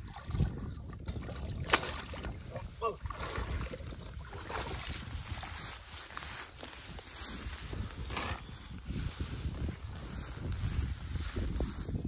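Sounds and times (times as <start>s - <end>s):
water splashing: 0.0s - 5.5s
wind buffeting microphone: 0.0s - 12.0s
grass rustling: 4.4s - 12.0s.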